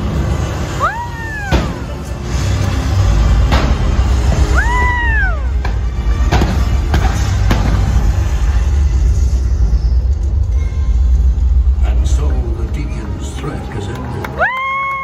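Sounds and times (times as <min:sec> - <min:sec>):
pyrotechnic explosions: 0:00.0 - 0:12.4
loud show music: 0:00.0 - 0:14.6
high falling cry: 0:04.4 - 0:05.6.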